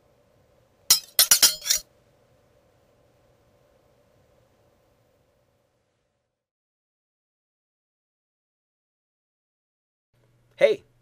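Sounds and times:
sharp ringing clinks: 0:00.9 - 0:01.8.

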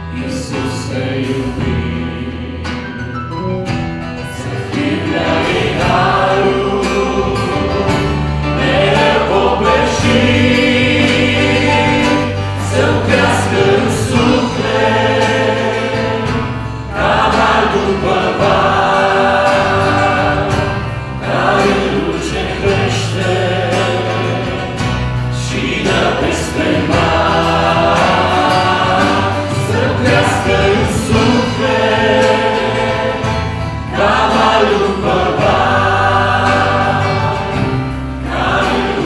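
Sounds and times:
acoustic guitar: 0:00.0 - 0:39.0
bass guitar: 0:00.0 - 0:39.0
men singing along: 0:04.4 - 0:39.0.

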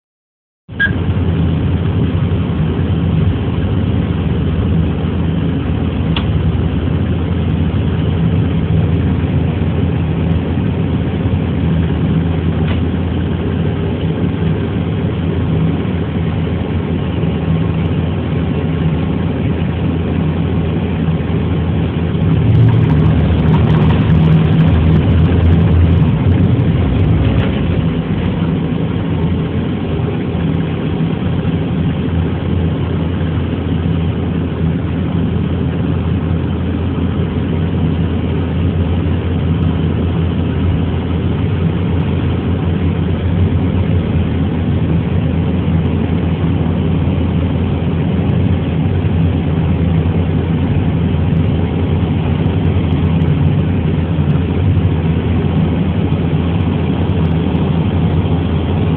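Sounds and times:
diesel locomotive engine droning: 0:00.7 - 0:58.9.

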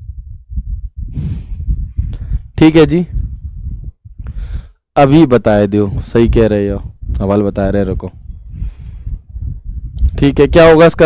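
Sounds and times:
man breathing out: 0:01.1 - 0:02.5, 0:04.2 - 0:04.8.

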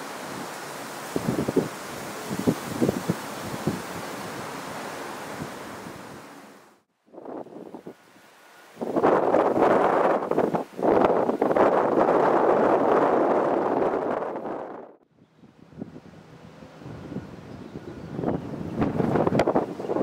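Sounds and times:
outdoor hiss: 0:00.0 - 0:13.3
wind buffeting microphone: 0:01.1 - 0:04.5, 0:08.8 - 0:20.0.

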